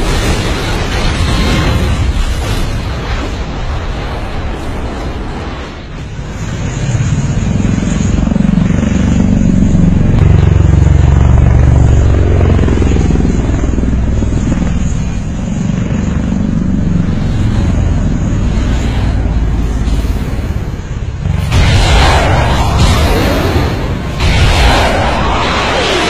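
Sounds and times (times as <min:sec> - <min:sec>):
aircraft engine droning: 0:00.0 - 0:26.0.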